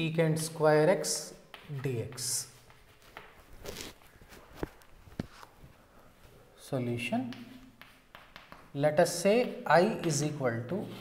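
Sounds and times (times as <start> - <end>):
footsteps on hard floor: 1.4 - 5.6.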